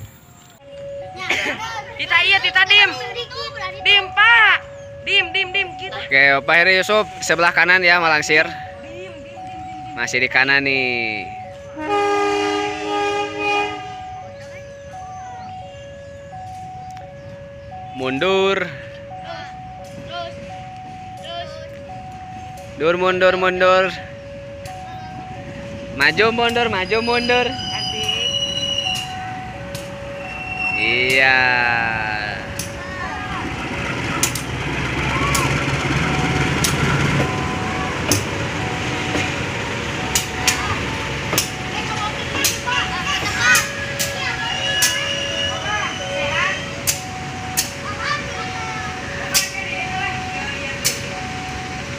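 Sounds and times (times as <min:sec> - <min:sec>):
locomotive engine rumble: 0:00.0 - 0:51.9
two-tone crossing alarm: 0:00.0 - 0:51.9
locomotive horn chord: 0:11.6 - 0:14.2, 0:44.1 - 0:46.9
sharp clicks: 0:34.2 - 0:34.6.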